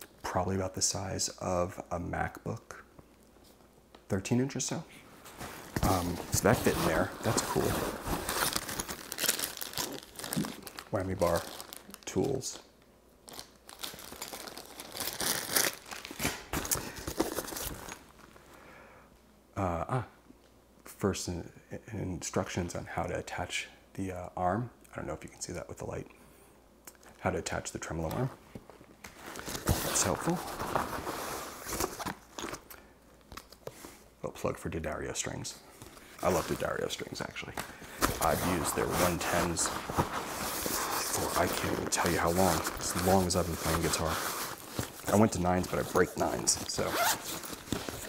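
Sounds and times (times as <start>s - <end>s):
paper packaging rustling: 5.2s - 12.6s, 13.3s - 18.2s, 29.0s - 32.7s, 37.6s - 48.0s
plastic bag crinkling: 5.6s - 12.7s, 13.3s - 18.3s, 37.8s - 48.0s.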